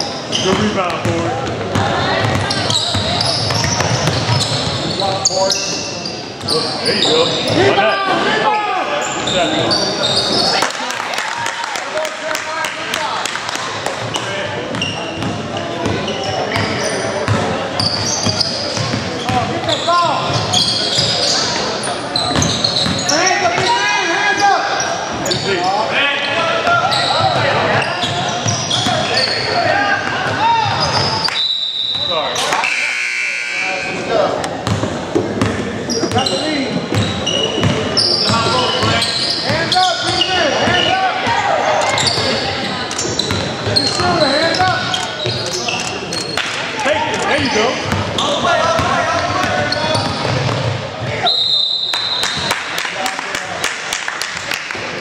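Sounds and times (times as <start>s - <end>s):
voices echoing in a gym: 0.0s - 55.0s
referee's whistle: 30.8s - 34.0s, 51.2s - 52.5s.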